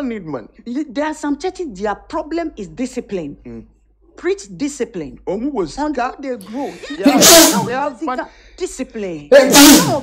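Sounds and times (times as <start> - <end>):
person speaking emphatically: 5.5 - 10.0
breathy hissing burst: 7.1 - 7.8, 9.4 - 10.0.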